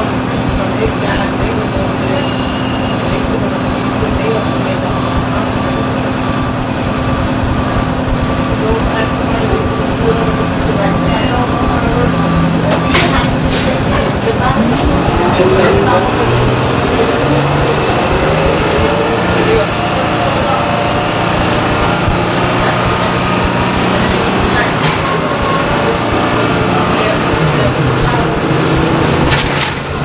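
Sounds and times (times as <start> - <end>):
bus diesel engine running: 0.0 - 30.0.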